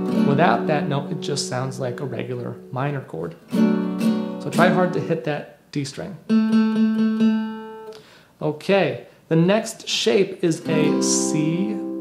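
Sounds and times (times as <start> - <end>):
acoustic guitar chord strummed: 0.0 - 5.3, 6.3 - 8.0, 10.6 - 12.0.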